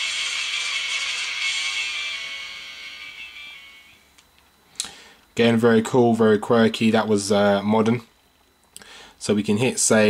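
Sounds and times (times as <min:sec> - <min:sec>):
music from phone speaker: 0:00.0 - 0:04.1.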